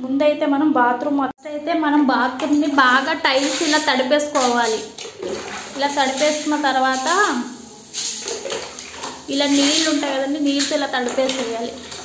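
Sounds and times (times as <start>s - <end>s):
woman speaking: 0.0s - 4.9s, 5.7s - 7.6s, 9.3s - 11.8s
water splashing on tiled floor: 2.4s - 12.0s.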